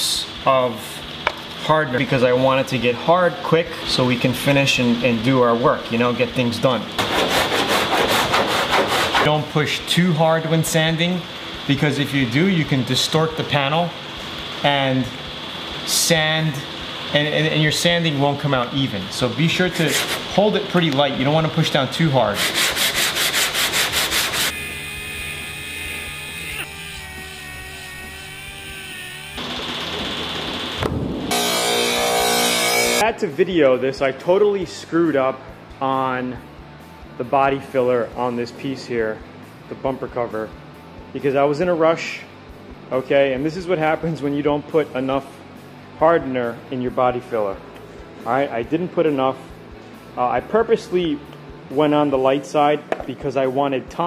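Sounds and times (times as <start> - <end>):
steady machine hum: 0.0 - 39.9
sandpaper rubbing on car panel: 7.0 - 9.4, 19.8 - 20.3, 22.3 - 24.5.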